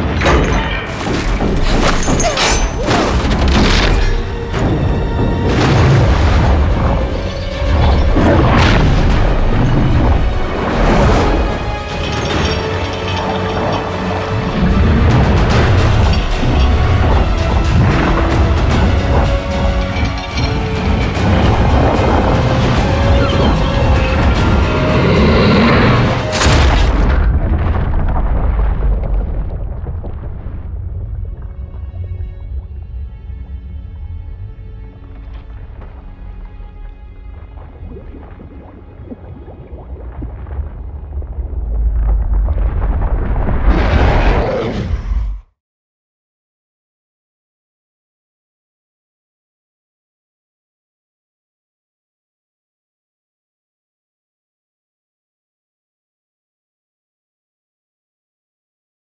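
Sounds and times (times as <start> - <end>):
film score music: 0.0 - 45.5
deep booming hits: 2.9 - 11.9, 25.9 - 33.2
heavy low rumble: 3.2 - 44.0
heavy underwater boom: 34.9 - 44.2.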